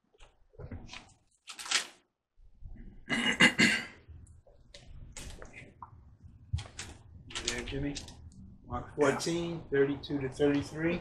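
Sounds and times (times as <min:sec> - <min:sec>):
thin pages rustling: 0:00.1 - 0:02.1, 0:06.6 - 0:08.2.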